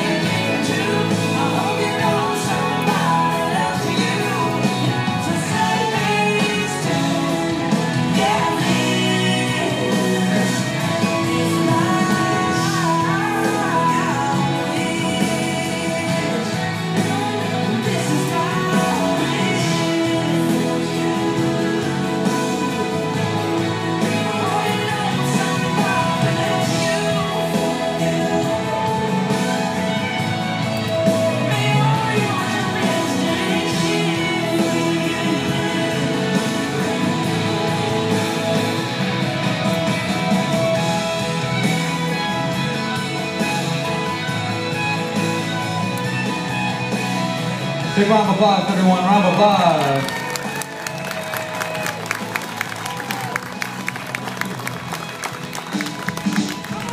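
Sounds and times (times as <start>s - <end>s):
person singing: 0.0s - 44.3s
guitar: 0.0s - 56.9s.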